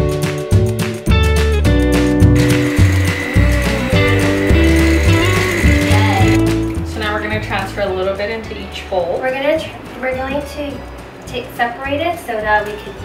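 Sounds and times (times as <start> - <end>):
background music with bass line: 0.0 - 11.2
electric hand mixer whining: 2.4 - 6.8.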